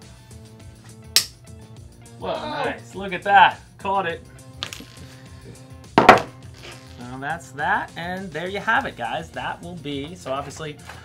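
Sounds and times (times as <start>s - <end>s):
background music: 0.0s - 11.0s
side cutters snapping wire: 1.1s - 1.4s.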